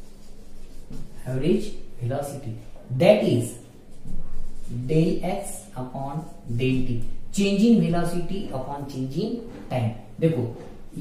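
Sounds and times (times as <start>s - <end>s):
marker pen writing on whiteboard: 0.0s - 7.2s
man speaking: 1.2s - 3.6s, 4.6s - 11.0s.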